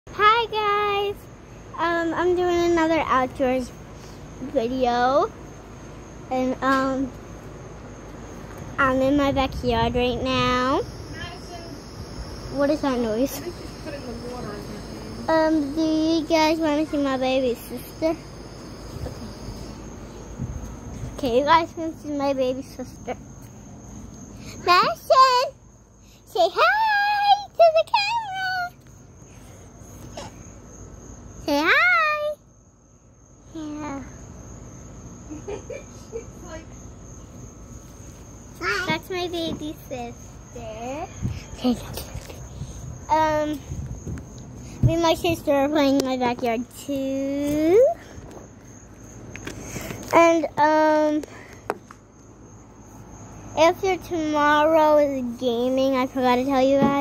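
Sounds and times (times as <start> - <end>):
girl speaking: 0.1 - 5.4, 6.2 - 7.2, 8.7 - 18.4, 21.0 - 23.4, 24.4 - 28.8, 31.4 - 32.4, 33.5 - 34.2, 36.3 - 36.8, 38.6 - 43.8, 44.8 - 48.1, 50.0 - 51.4, 53.5 - 57.0
crickets chirping: 0.1 - 57.0
girl singing: 26.3 - 28.8.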